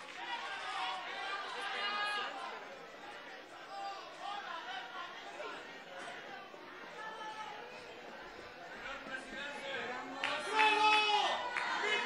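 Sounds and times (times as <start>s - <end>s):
faint chatter of voices: 0.0s - 12.0s.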